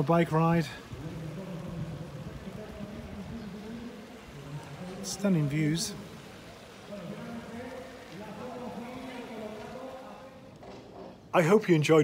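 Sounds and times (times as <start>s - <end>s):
faint distant voices: 0.0s - 11.8s.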